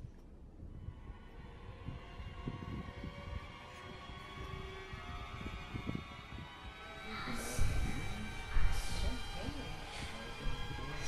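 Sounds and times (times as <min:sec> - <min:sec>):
eerie sustained tones: 0:00.7 - 0:11.0.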